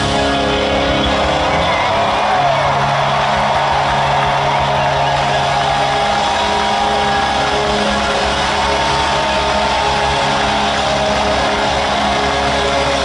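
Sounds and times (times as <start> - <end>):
live rock band: 0.0 - 13.0
sustained electric guitars: 0.0 - 13.0.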